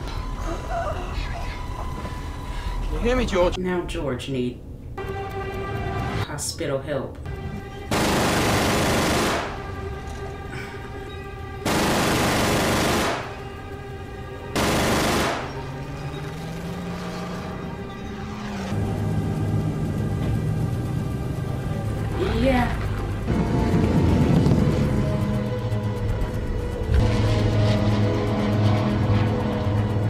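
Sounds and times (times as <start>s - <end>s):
film music: 0.0s - 30.0s
aircraft engine drone: 7.3s - 30.0s
aircraft machine-gun fire: 7.9s - 9.8s, 11.6s - 13.6s, 14.5s - 15.7s.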